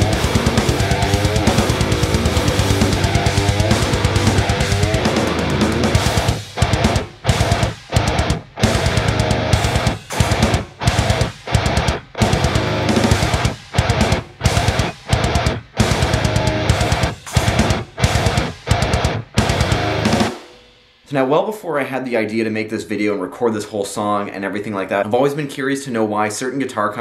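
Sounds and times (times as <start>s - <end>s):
distorted electric guitar riffs: 0.0s - 21.2s.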